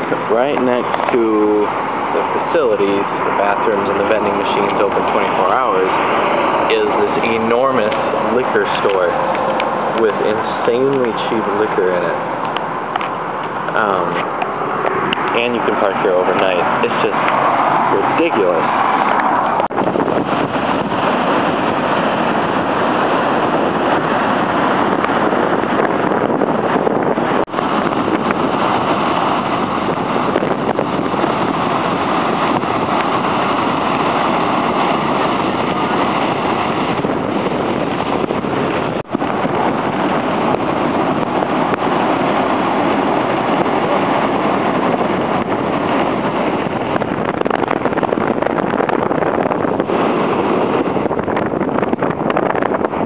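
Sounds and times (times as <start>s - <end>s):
river rapids and waterfall rushing: 0.0s - 24.8s
wind buffeting microphone: 0.0s - 53.0s.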